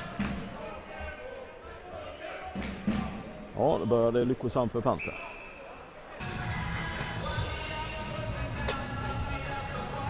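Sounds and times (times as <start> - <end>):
ice hockey arena ambience: 0.0 - 10.0.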